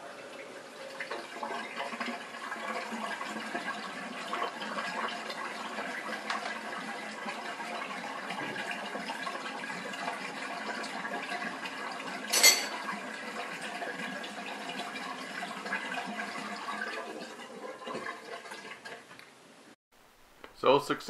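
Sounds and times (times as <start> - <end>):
dishwasher drain pump running: 0.0 - 19.0.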